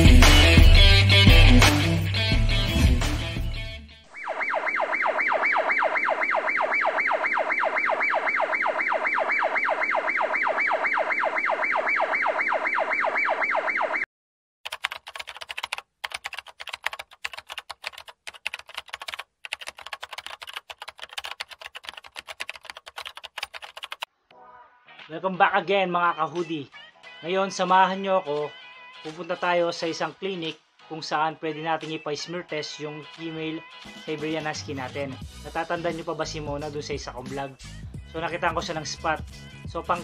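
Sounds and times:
keyboard typing clicks: 0:14.7 - 0:24.1.

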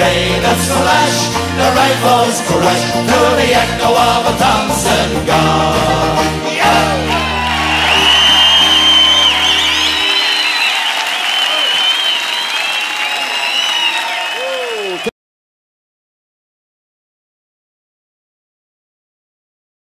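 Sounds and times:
recorded folk song: 0:00.0 - 0:10.2
audience applauding and cheering: 0:06.7 - 0:15.1.

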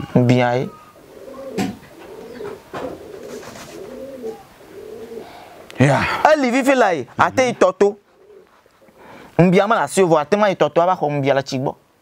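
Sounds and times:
pigeons cooing: 0:00.0 - 0:06.2, 0:08.0 - 0:09.3.

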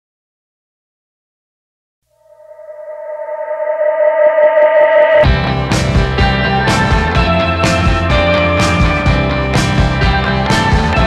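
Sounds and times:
sustained music note: 0:02.2 - 0:05.4.

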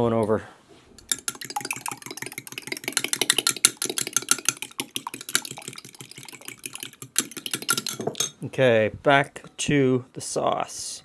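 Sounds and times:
fork beating eggs in glass cup: 0:01.0 - 0:08.4.

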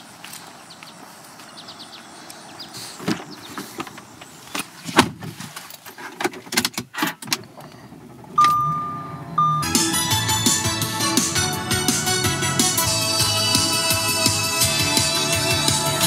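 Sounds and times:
car engine starting: 0:06.8 - 0:16.0
electronic chime: 0:08.4 - 0:11.8
music with a beat: 0:09.6 - 0:16.0.

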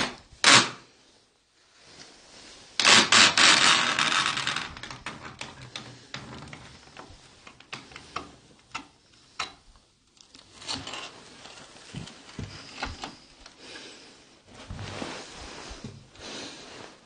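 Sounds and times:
wood clicks: 0:05.0 - 0:10.8.

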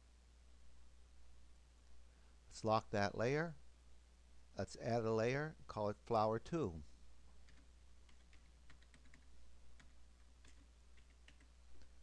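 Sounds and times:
keyboard typing: 0:07.4 - 0:12.0.

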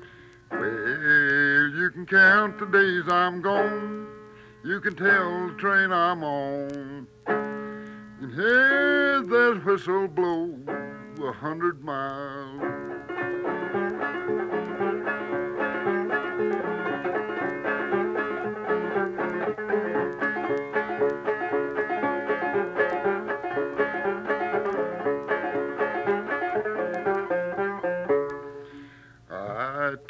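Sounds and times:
banjo playing: 0:10.6 - 0:11.2, 0:12.6 - 0:28.7.

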